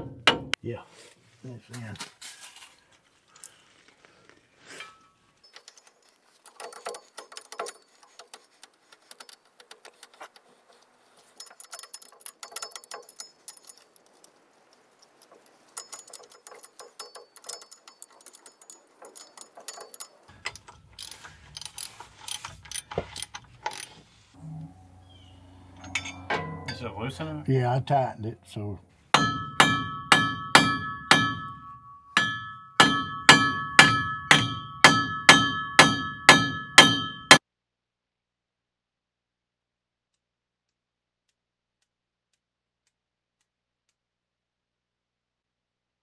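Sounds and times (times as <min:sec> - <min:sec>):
hand tools clicking on metal: 0:04.8 - 0:24.0
wrench ratcheting: 0:15.8 - 0:24.0.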